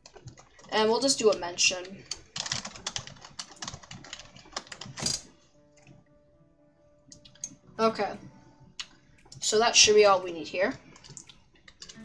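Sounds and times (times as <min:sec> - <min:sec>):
keyboard typing clicks: 0:02.1 - 0:05.2.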